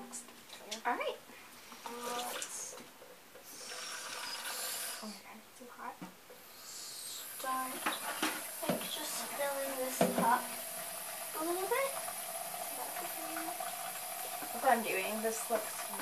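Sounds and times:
faucet water running into cup: 1.8s - 2.8s, 3.4s - 5.2s, 6.4s - 16.0s.

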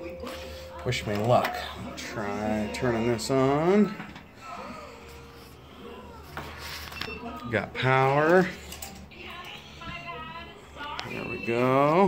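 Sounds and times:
faint television audio: 0.0s - 12.0s.

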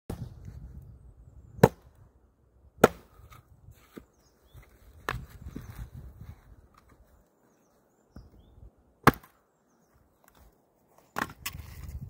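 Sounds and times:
axe cracking wood: 2.8s - 3.4s, 9.0s - 9.4s.

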